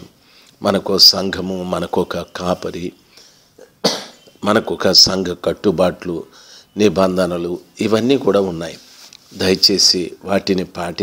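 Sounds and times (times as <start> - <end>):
man speaking: 0.0 - 3.1, 4.4 - 11.0
man coughing: 3.6 - 4.3.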